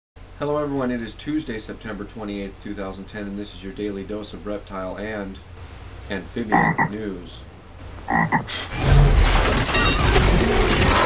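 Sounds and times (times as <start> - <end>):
frog croak: 6.5 - 7.0, 8.1 - 8.6.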